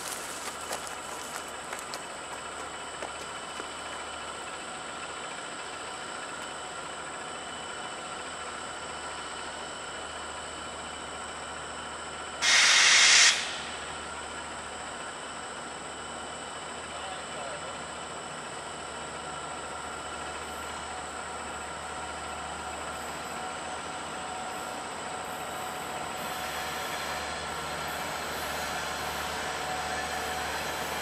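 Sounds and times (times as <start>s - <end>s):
distant train noise: 0.0s - 31.0s
loud hiss: 12.4s - 14.1s.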